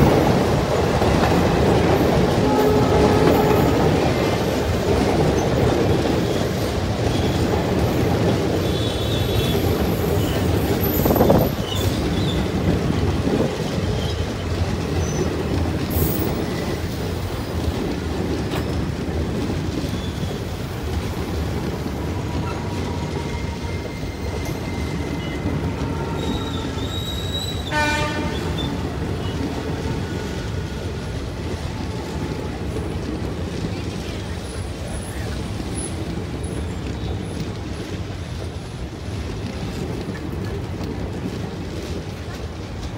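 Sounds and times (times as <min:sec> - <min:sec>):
train wheels rumbling on rails: 0:00.0 - 0:42.9
wheels squealing: 0:05.2 - 0:17.5, 0:18.6 - 0:33.0.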